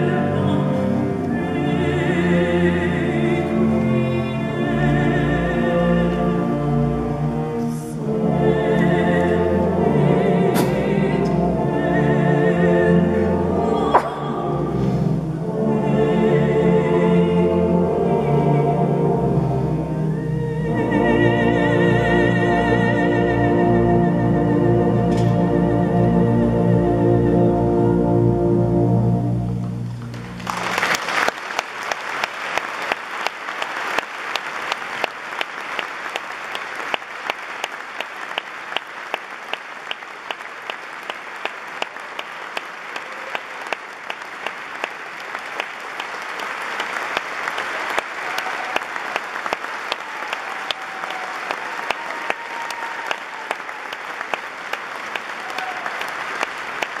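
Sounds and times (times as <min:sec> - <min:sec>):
audience applauding: 0:29.9 - 0:57.0.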